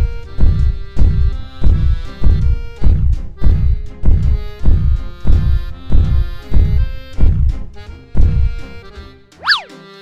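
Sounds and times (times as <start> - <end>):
low thud: 0.0 - 7.6, 8.2 - 8.6
cartoon background music: 0.0 - 10.0
cartoon pitch sweep effect: 9.4 - 10.0.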